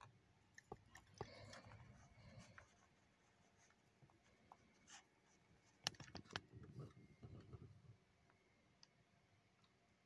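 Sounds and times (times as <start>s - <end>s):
faint handling rustle: 0.6s - 7.9s.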